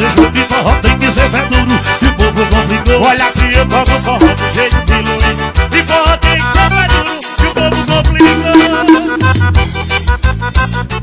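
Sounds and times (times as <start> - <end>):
accordion: 0.0 - 11.0
bass: 0.0 - 11.0
percussion dance beat: 0.0 - 11.0.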